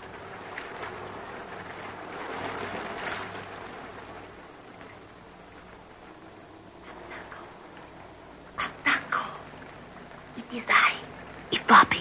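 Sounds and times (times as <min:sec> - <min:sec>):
rain falling: 0:00.0 - 0:12.0.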